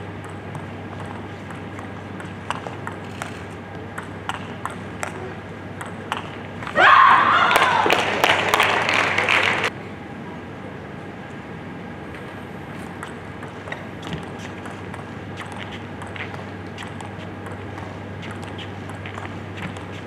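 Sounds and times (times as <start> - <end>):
table tennis ball clicks: 0.2 - 5.2, 13.0 - 20.0
person shouting: 6.8 - 8.0
applause and cheering: 7.3 - 9.7.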